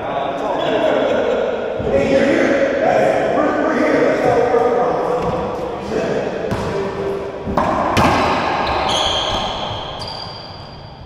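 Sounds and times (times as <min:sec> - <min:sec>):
men's voices echoing: 0:00.0 - 0:08.9.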